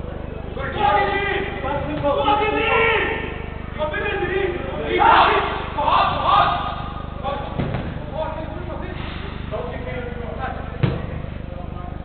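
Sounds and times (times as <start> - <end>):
steady low hum: 0.0 - 12.0
distant players calling: 0.1 - 11.8
football kicked on turf: 7.6 - 8.1, 10.8 - 11.2.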